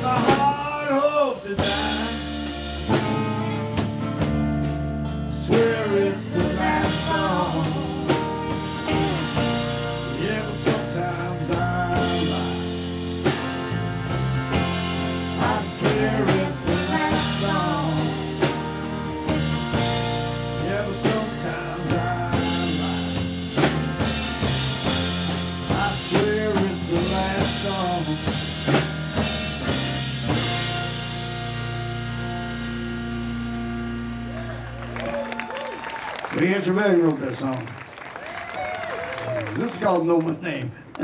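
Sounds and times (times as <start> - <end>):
live rock band playing: 0.0 - 37.5.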